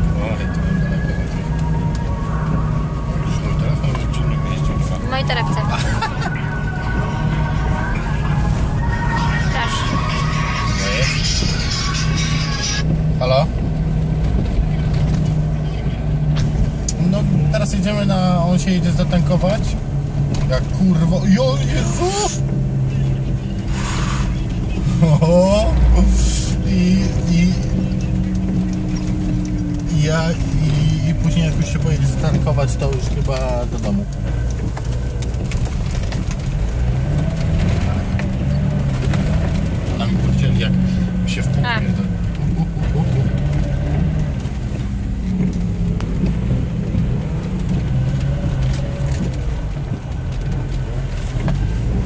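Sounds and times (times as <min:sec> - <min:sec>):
car engine and road noise: 0:00.0 - 0:52.0.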